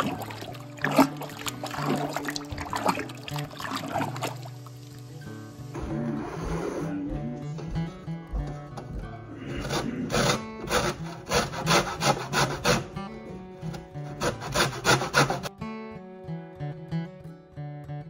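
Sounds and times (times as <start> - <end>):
background music: 0.0 - 17.5
lemon scraping on metal grater: 9.5 - 13.0, 13.7 - 15.5.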